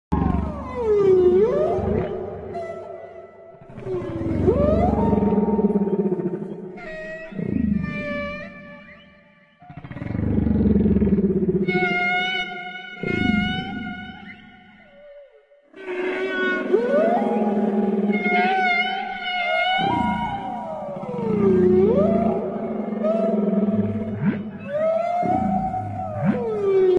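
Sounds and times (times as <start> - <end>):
moaning whale call: 0.2 - 26.9.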